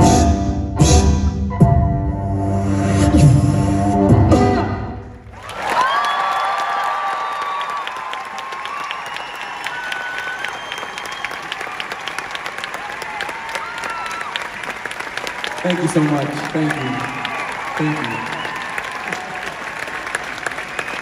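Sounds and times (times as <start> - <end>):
audience applauding and cheering: 5.0 - 21.0
long whistles: 8.7 - 11.7.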